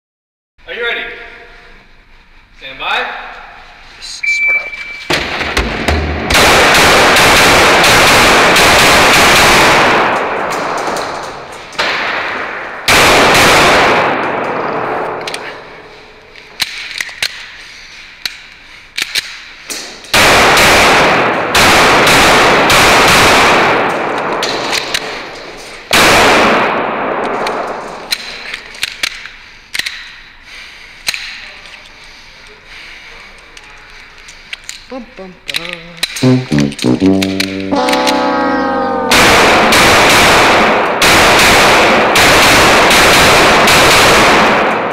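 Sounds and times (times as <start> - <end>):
rapid pistol fire echoing indoors: 5.1 - 15.8, 20.0 - 28.4, 39.3 - 44.9.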